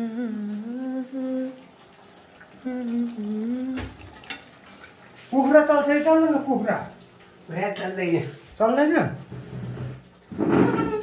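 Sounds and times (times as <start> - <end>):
person humming: 0.0 - 1.6, 2.6 - 4.0.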